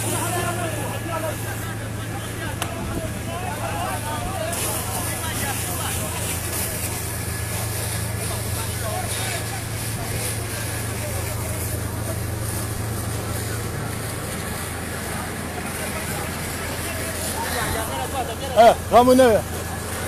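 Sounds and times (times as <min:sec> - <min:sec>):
hoses spraying water: 0:00.0 - 0:20.0
people's voices: 0:00.0 - 0:20.0.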